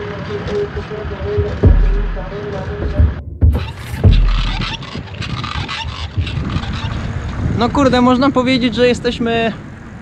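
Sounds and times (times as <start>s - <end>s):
tyre and road noise: 0.0s - 10.0s
loud low rumble: 1.4s - 5.1s.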